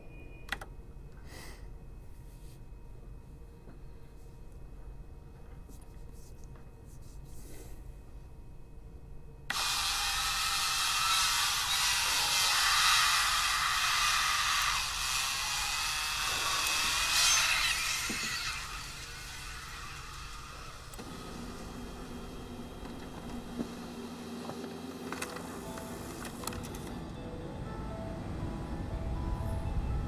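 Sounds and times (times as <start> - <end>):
wavering whining tones: 10.1 - 30.0
low steady drone: 13.3 - 30.0.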